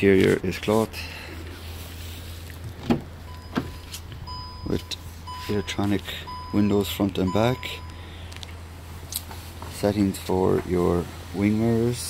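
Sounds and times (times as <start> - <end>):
faint steady high tone: 3.3 - 8.2.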